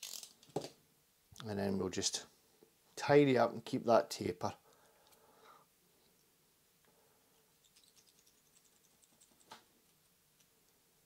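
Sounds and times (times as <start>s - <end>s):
faint ticks and crackles: 6.0s - 10.9s.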